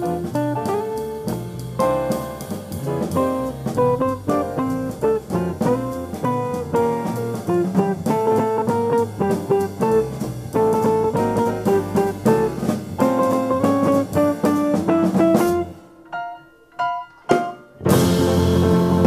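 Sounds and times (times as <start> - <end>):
upright bass: 0.0 - 15.8, 17.8 - 19.0
drum kit: 0.0 - 16.0, 17.2 - 19.0.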